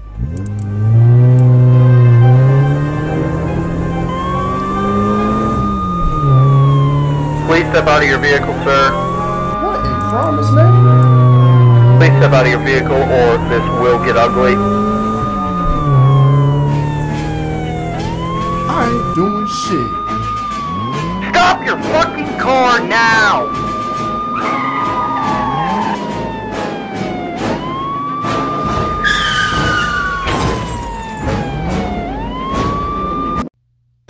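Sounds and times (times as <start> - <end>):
police siren wailing: 0.0 - 33.5.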